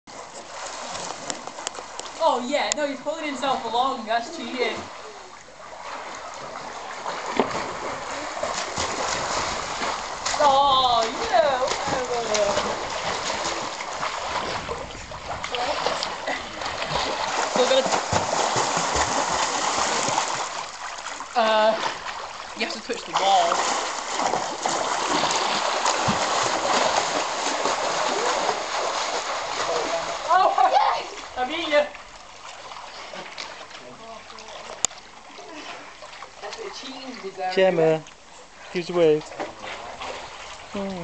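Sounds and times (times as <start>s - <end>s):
pool water splashing: 0.1s - 41.0s
hands slapping water: 5.9s - 20.6s, 21.8s - 30.4s.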